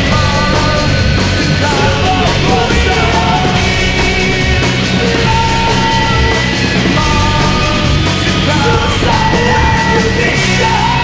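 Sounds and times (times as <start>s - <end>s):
distorted guitars: 0.0s - 11.0s
drums: 0.0s - 11.0s
harsh screamed vocal: 0.0s - 11.0s.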